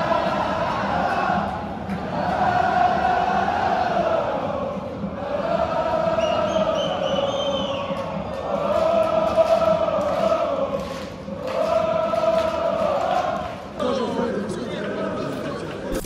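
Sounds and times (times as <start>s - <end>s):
stadium crowd chanting: 0.0s - 13.8s.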